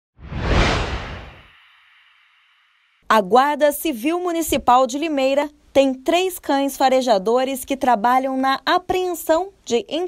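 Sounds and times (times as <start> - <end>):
whoosh with deep rumble: 0.2 - 2.6.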